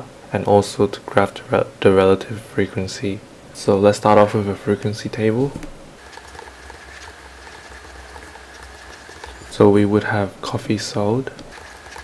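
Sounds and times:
low electrical hum: 0:00.0 - 0:12.0
stylus scratching on pen tablet: 0:06.0 - 0:10.0, 0:11.4 - 0:12.0.

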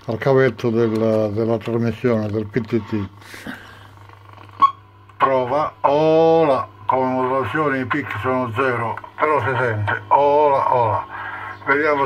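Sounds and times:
radio hum and hiss: 0:00.0 - 0:12.0.

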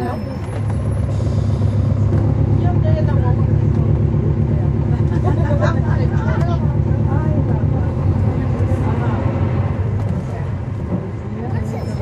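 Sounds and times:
bus diesel engine drone: 0:00.0 - 0:12.0.

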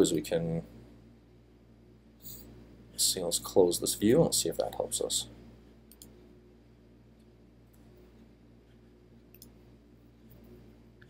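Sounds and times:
steady low hum: 0:00.0 - 0:11.0
faint computer mouse clicks: 0:05.9 - 0:06.2, 0:09.3 - 0:09.6.

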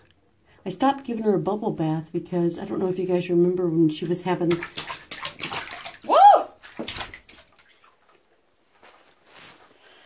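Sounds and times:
bath water splashing: 0:03.9 - 0:08.4
person calling woo: 0:06.0 - 0:06.6.

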